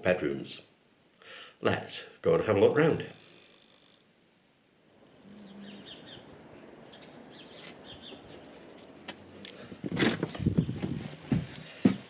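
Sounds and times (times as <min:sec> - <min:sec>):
small birds chirping: 0:05.1 - 0:11.0.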